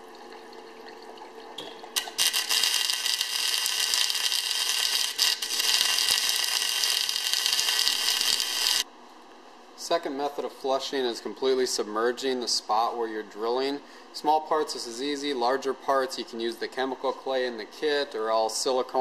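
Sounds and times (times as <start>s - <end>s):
hissing crackle of sparks: 2.0s - 8.9s.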